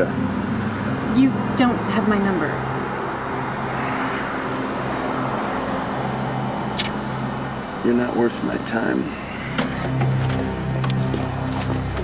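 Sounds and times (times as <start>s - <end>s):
outdoor ambience rumble and hiss: 0.0s - 12.0s
low hum: 8.5s - 12.0s.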